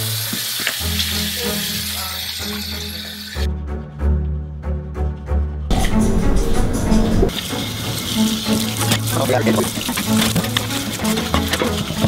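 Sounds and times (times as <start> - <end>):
dishes being rinsed: 7.3 - 12.0
tap water running into metal sink: 7.3 - 12.0.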